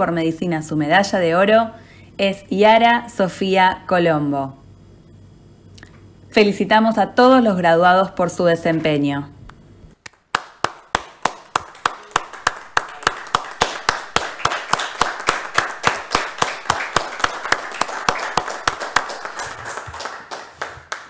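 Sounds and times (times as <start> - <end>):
hands clapping: 10.0 - 21.0.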